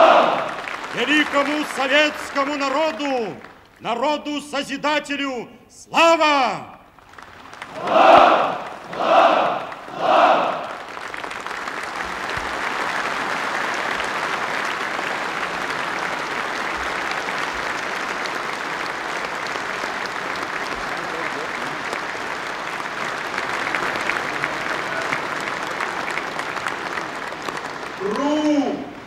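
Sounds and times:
audience applauding: 0.0s - 4.2s, 6.9s - 29.0s.

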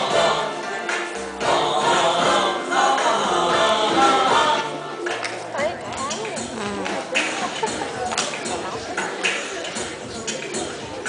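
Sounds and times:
singing over a backing track: 0.0s - 7.7s.

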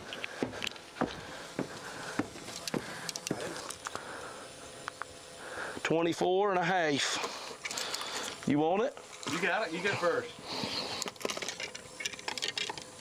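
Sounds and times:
boots on wooden stairs: 0.0s - 3.5s.

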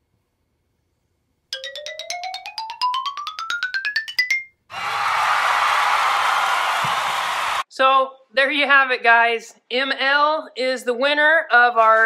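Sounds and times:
recorded applause: 4.7s - 7.7s.

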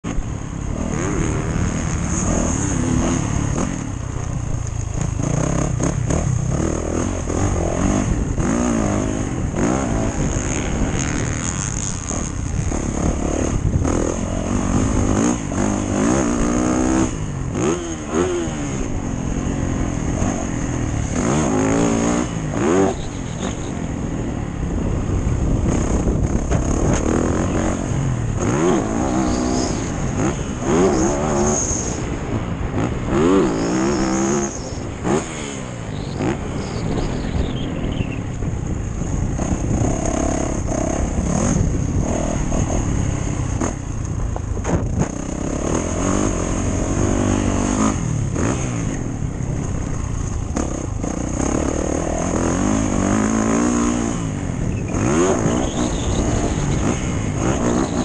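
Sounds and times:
steady rushing noise: 0.0s - 58.0s
dirt bike engine revving: 0.1s - 44.0s, 44.6s - 58.0s.

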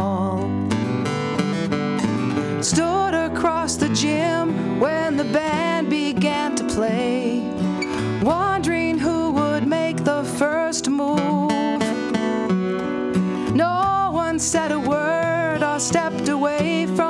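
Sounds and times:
acoustic guitars strummed and picked: 0.0s - 17.0s
woman singing long held notes: 8.2s - 12.0s.

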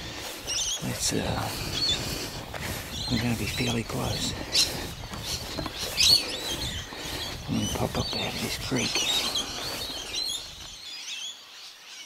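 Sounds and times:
bird chirping call: 0.0s - 12.0s.

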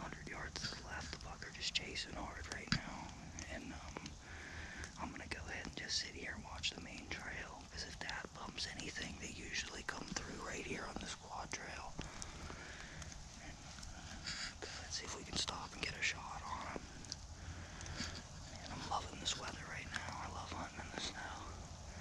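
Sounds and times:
man whispering: 0.0s - 22.0s.

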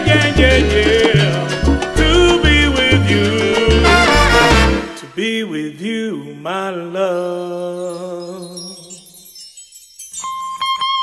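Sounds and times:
man singing unaccompanied: 0.0s - 9.2s.

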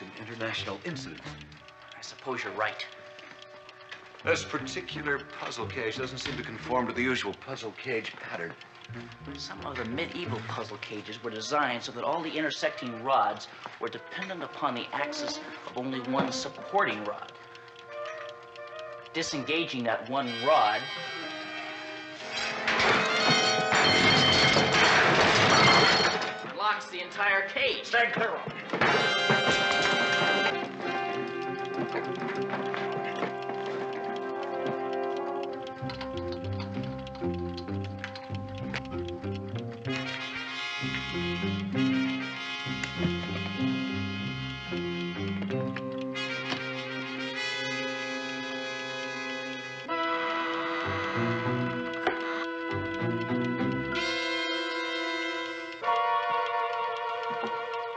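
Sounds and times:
dramatic orchestral music: 8.8s - 26.2s, 28.9s - 57.9s
metal rods clattering to floor: 22.3s - 26.6s
brass sustained chords: 39.0s - 57.9s.

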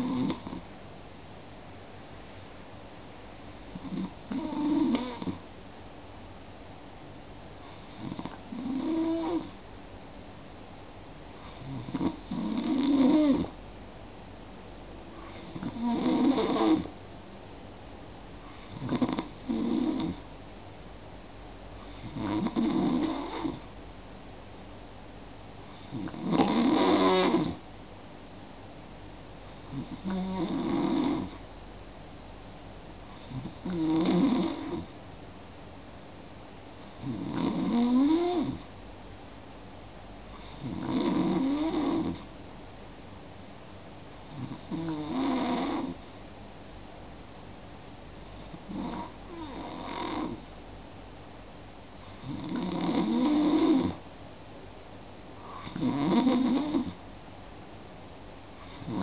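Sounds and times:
snoring: 0.0s - 0.7s, 3.3s - 5.4s, 7.6s - 9.6s, 11.4s - 13.5s, 15.2s - 16.9s, 18.5s - 20.2s, 21.8s - 23.7s, 25.7s - 27.6s, 29.5s - 31.4s, 33.1s - 35.0s, 36.8s - 38.7s, 40.3s - 42.3s, 44.2s - 46.2s, 48.2s - 50.6s, 52.0s - 54.0s, 55.4s - 57.0s, 58.6s - 59.0s.

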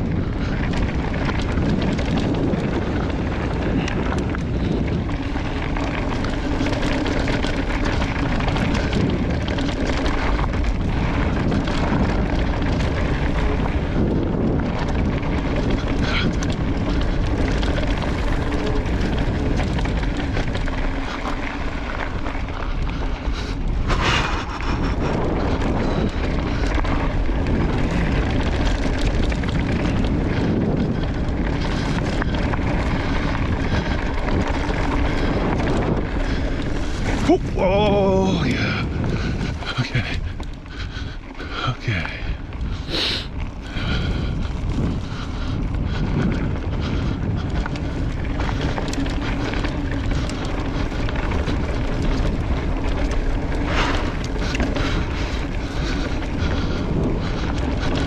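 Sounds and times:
tyres rolling on dirt: 0.0s - 58.0s
wind on microphone: 0.0s - 58.0s.

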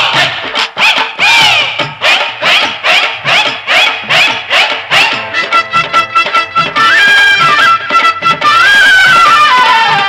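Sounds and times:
rhythmic shouted calls: 0.0s - 5.3s.

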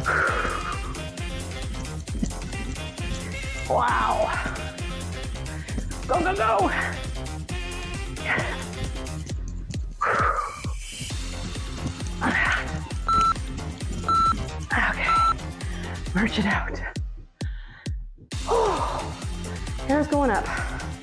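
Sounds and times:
workout music with steady beat: 0.0s - 21.0s
interval timer beeps: 13.0s - 13.4s, 14.0s - 15.4s.

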